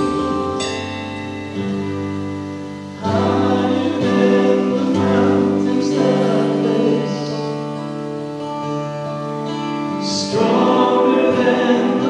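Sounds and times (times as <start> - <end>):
worship band playing a hymn: 0.0 - 12.0
voices singing together: 3.0 - 7.9, 10.0 - 12.0.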